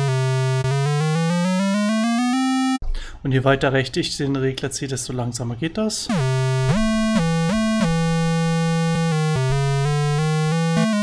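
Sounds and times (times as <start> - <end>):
synthesizer gliding notes: 0.0 - 2.8, 6.1 - 11.0.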